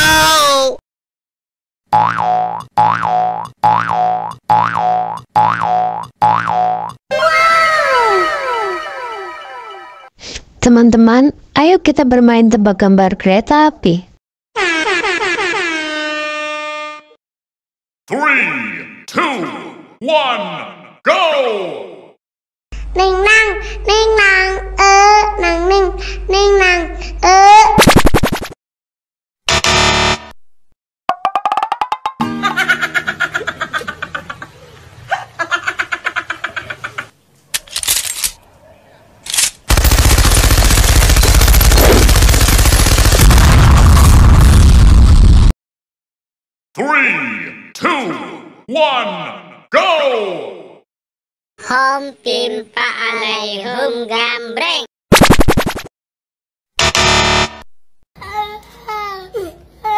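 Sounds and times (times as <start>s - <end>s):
machine gun firing: 39.6s - 43.8s.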